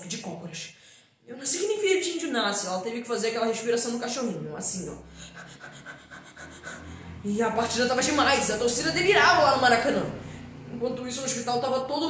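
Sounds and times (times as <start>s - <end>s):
boy rapid panting: 5.2s - 7.2s.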